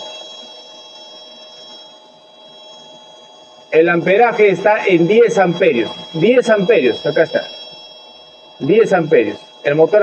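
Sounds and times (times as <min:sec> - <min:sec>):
air compressor humming and whining: 0:00.0 - 0:10.0.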